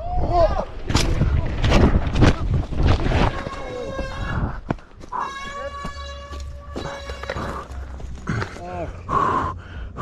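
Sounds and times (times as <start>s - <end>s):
bike and rider hitting dirt: 0.6s - 8.6s.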